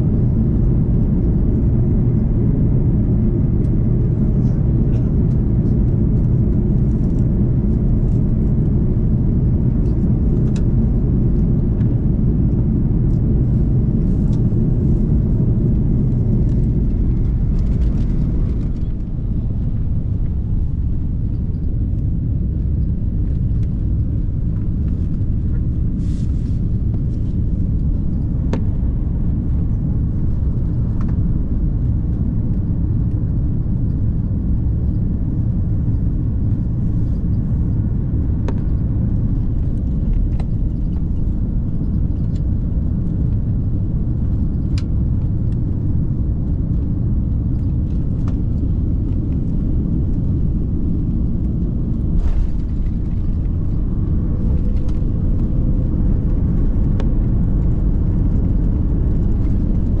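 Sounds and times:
aircraft engine rumble: 0:00.0 - 1:00.0.

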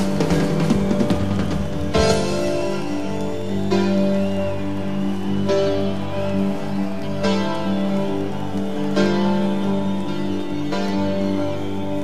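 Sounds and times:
rock band guitar chords: 0:00.0 - 0:10.9.

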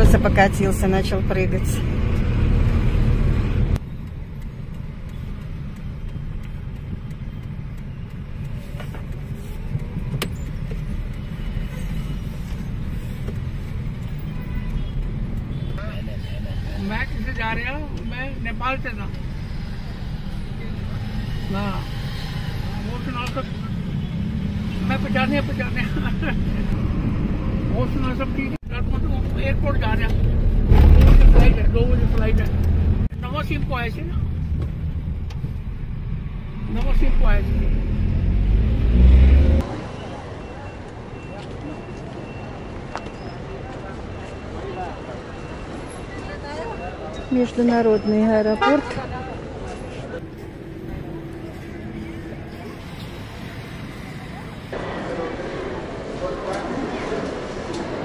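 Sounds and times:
car driving rumble: 0:00.0 - 0:42.8.

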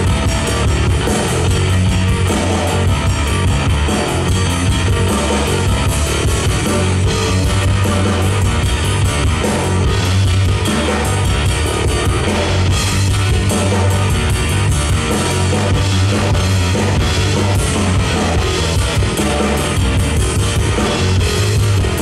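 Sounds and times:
instrumental rock band: 0:00.0 - 0:22.0.

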